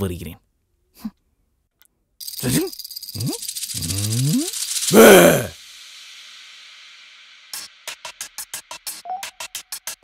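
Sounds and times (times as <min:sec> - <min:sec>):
rattling buzzing noise: 0:02.2 - 0:05.5
person groaning and crying out: 0:04.1 - 0:05.6.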